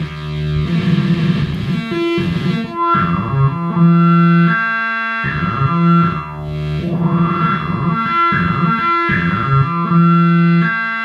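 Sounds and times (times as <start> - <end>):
synth sequencer electronic notes: 0.0 - 11.0.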